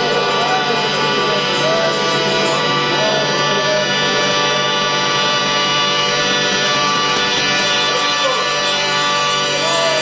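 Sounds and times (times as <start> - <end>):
harmonium sustained chord: 0.0 - 10.0.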